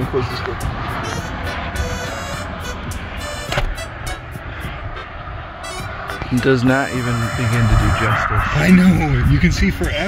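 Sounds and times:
music playing: 0.0s - 10.0s
wind buffeting microphone: 0.0s - 10.0s.

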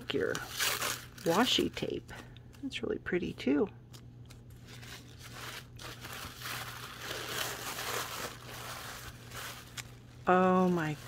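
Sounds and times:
tissue paper crinkling: 0.0s - 1.9s, 4.3s - 11.0s.

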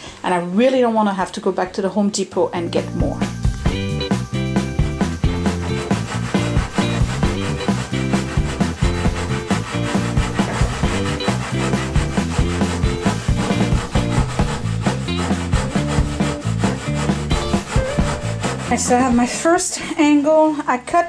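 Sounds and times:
background music with beat: 3.0s - 19.3s
hand saw cutting wood: 5.2s - 19.6s.

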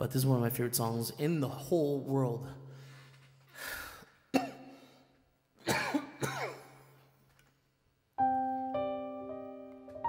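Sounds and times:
sharp breath: 2.7s - 5.1s
man clearing his throat: 4.3s - 4.8s, 5.6s - 6.9s.

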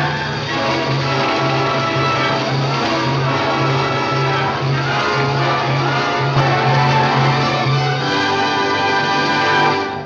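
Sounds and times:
orchestral music chord: 0.0s - 10.0s.

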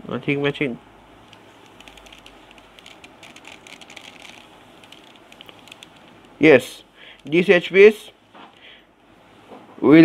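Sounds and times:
puzzle cube layers clicking: 1.6s - 6.3s.

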